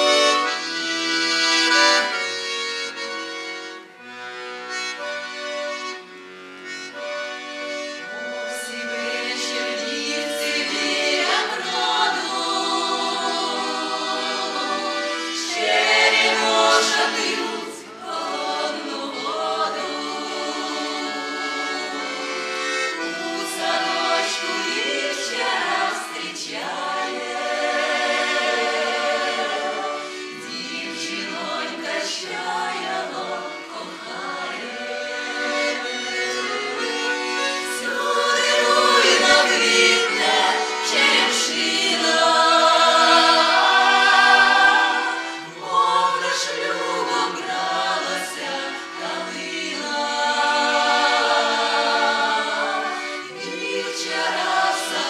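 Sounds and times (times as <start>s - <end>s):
women singing folk song together: 8.4s - 55.0s.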